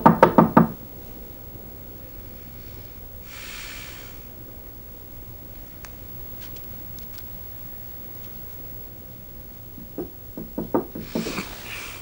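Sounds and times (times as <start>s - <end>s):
knuckles knocking on wooden door: 0.0s - 0.8s, 9.8s - 11.5s.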